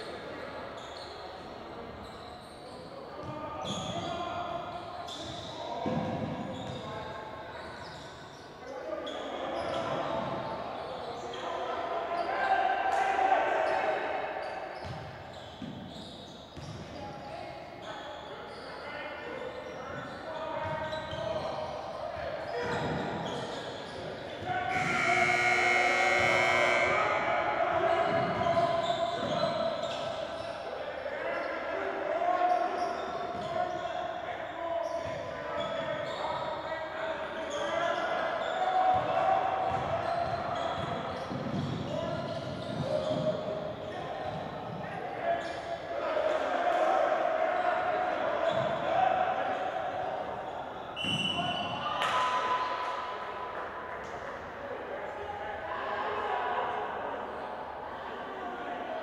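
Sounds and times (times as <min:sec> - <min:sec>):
players shouting: 0:24.6 - 0:29.0.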